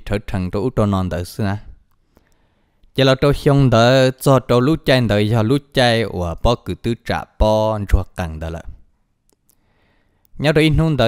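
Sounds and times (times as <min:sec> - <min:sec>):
narrator speaking: 0:00.0 - 0:01.8, 0:03.0 - 0:08.8, 0:10.4 - 0:11.0.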